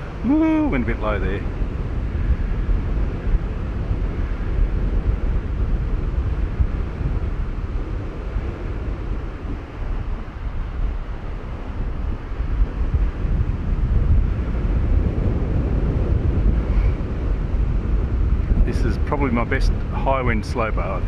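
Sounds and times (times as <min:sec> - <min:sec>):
strong wind buffeting microphone: 0:00.0 - 0:21.0
surf washing: 0:00.0 - 0:21.0.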